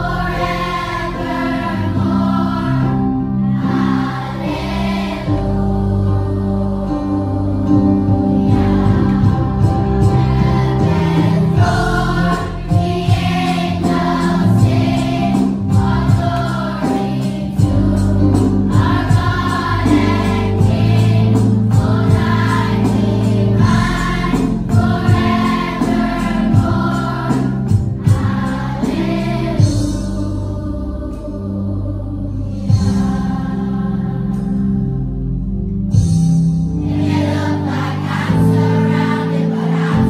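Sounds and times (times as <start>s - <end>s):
children's choir singing: 0.0s - 34.8s, 36.8s - 40.0s.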